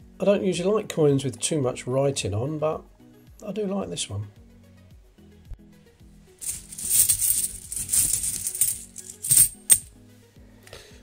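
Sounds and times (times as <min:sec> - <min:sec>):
coins clinking: 0:06.4 - 0:09.9
coins jingling in a cloth bag: 0:06.4 - 0:09.9.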